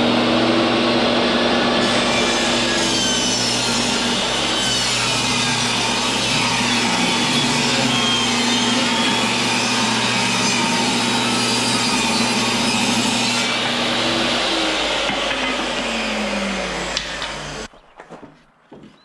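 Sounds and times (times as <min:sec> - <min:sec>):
table saw ripping wood: 0:00.0 - 0:17.8.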